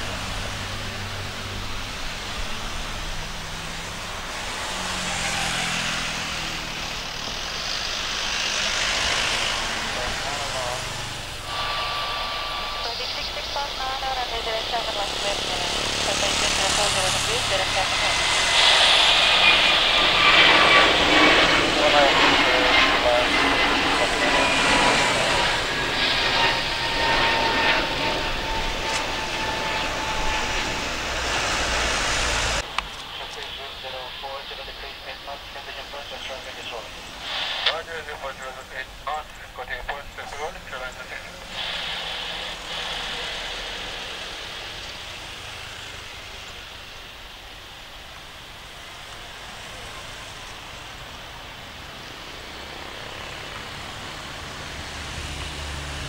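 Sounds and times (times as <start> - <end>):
distant jet engine rumble: 0.0 - 56.0
jet engines at takeoff thrust: 0.0 - 56.0.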